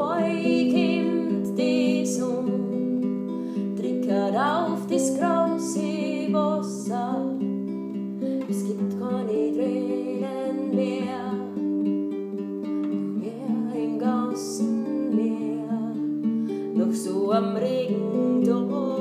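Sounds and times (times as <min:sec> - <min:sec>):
woman singing: 0:00.0 - 0:07.5, 0:08.4 - 0:11.8, 0:12.9 - 0:19.0
classical guitar chords: 0:00.0 - 0:19.0.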